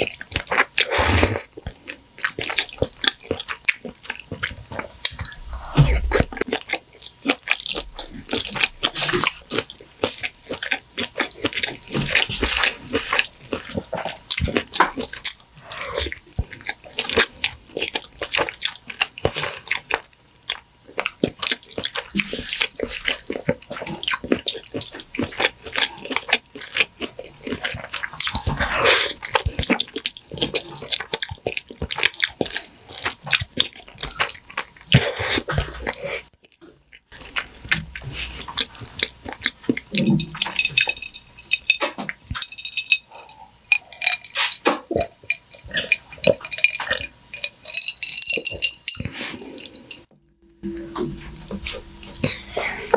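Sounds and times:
wet chewing and mouth sounds: 0:00.0 - 0:52.9.

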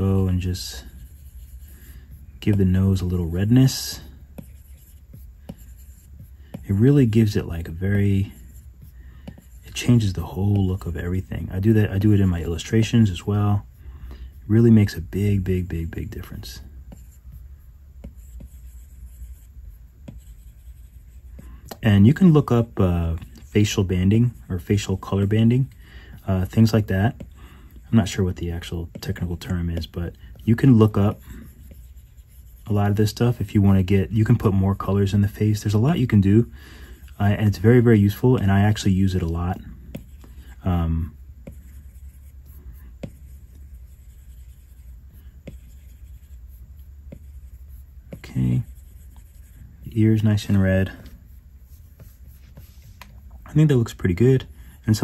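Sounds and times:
low steady hum: 0:00.0 - 0:55.0
stylus rubbing on glass screen: 0:00.0 - 0:55.0
stylus tapping on screen: 0:04.3 - 0:06.7, 0:16.9 - 0:21.8, 0:41.4 - 0:48.3.

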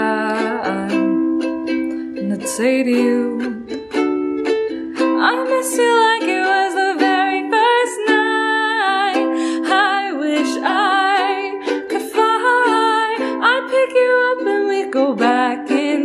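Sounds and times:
woman singing with vibrato: 0:00.0 - 0:01.3, 0:02.2 - 0:03.8, 0:05.0 - 0:16.0
strummed ukulele: 0:00.0 - 0:16.0.

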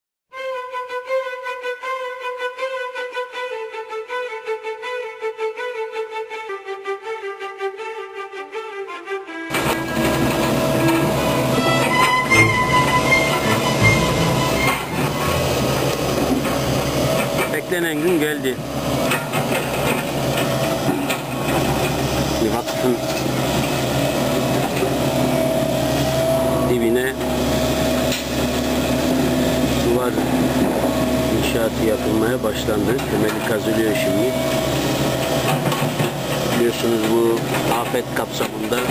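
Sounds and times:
violin music: 0:00.3 - 0:38.9
excavator engine running: 0:09.5 - 0:38.9.

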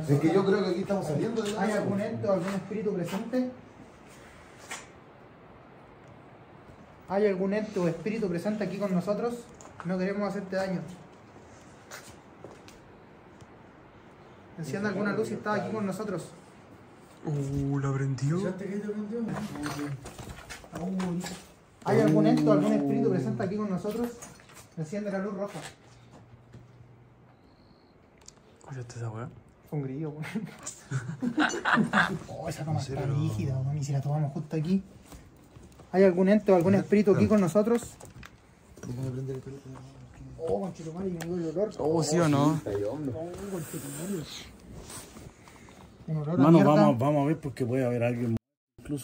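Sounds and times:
man talking: 0:20.8 - 0:24.2, 0:32.1 - 0:34.9, 0:35.9 - 0:37.9, 0:46.1 - 0:49.0
people talking: 0:20.8 - 0:24.2, 0:46.1 - 0:49.0.

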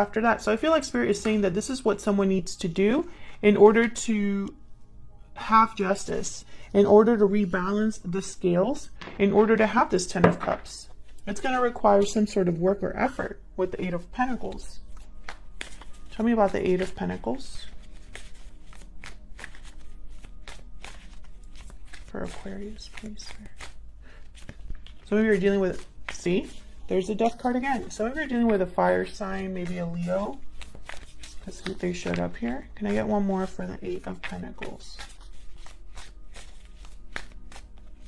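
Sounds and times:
steady low hum: 0:00.0 - 0:38.0
cards being shuffled: 0:14.4 - 0:38.0.

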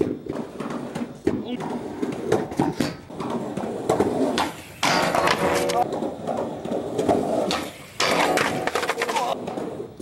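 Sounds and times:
skateboard clacks: 0:00.0 - 0:10.0
skateboard crash: 0:00.0 - 0:10.0.

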